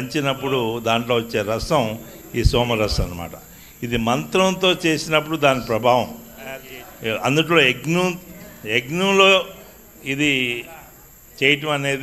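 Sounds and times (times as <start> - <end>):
crickets chirping: 0.0 - 12.0
man speaking into a microphone: 0.0 - 12.0.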